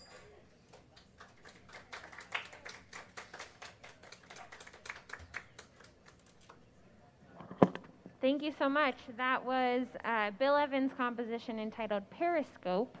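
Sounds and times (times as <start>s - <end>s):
light applause: 0.7s - 6.4s.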